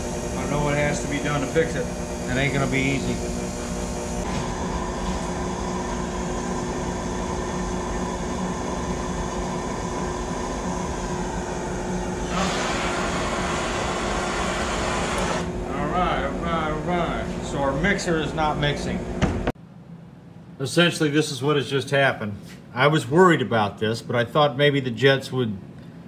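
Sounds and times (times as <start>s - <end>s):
electric air blower humming: 0.0s - 19.6s.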